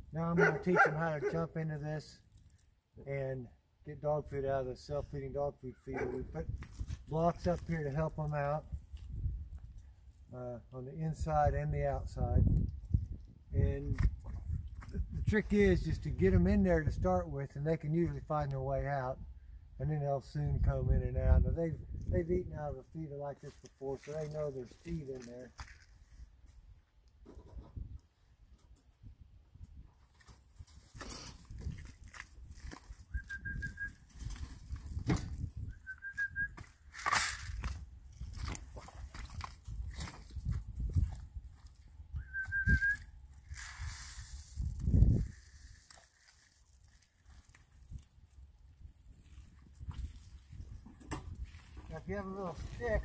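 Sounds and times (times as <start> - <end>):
footsteps in mud: 23.4 - 26.1, 36.6 - 42.0.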